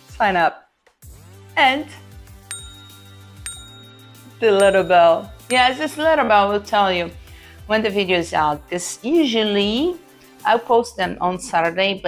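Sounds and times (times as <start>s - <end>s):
background music: 0.0s - 12.0s
bicycle bell ringing: 2.5s - 6.6s.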